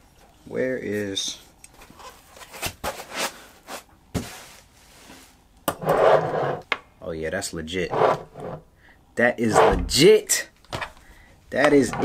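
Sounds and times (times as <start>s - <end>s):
rubbing scrape: 5.8s - 6.6s, 7.9s - 8.6s.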